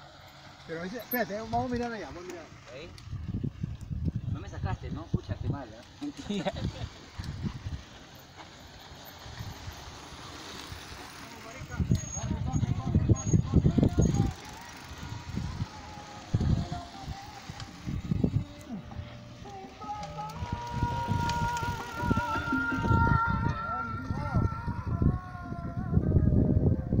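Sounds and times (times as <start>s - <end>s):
mountain bikes rolling on dirt: 0.0s - 25.6s
wind buffeting microphone: 2.9s - 5.7s, 6.4s - 8.0s, 11.6s - 27.0s
wavering high squeal: 19.8s - 25.3s.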